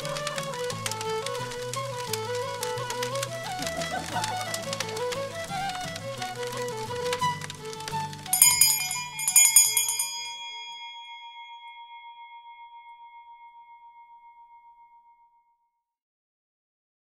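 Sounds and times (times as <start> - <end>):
background music: 0.0 - 11.0
small bell ringing: 8.3 - 15.3.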